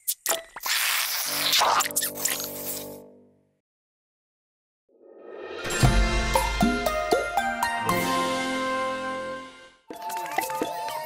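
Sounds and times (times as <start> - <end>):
held music chord: 5.7 - 9.8.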